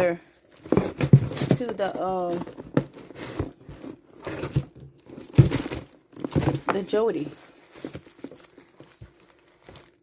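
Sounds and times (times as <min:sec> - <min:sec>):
plastic packaging crinkling: 0:00.3 - 0:10.0.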